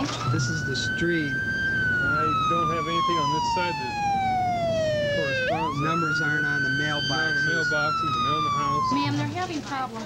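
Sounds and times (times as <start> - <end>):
ambulance siren wailing: 0.0 - 9.5.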